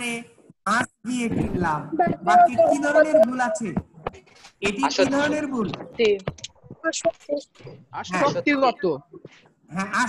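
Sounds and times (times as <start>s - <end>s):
person speaking: 0.0s - 10.0s.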